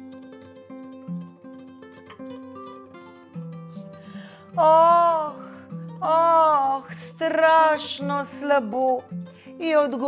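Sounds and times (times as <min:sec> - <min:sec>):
plucked guitar melody: 0:00.0 - 0:10.0.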